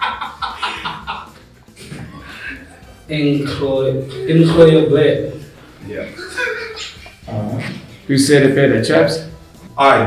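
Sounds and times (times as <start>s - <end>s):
men laughing quietly: 0.0s - 3.0s, 6.0s - 8.0s.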